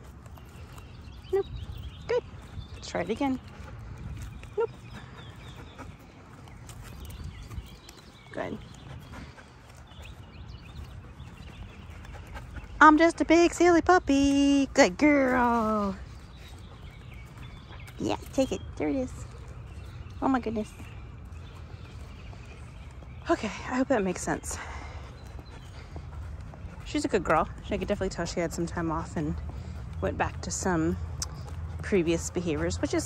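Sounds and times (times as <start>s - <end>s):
footsteps on pavement: 0.0s - 33.0s
dog panting softly: 2.3s - 13.0s, 24.0s - 28.6s.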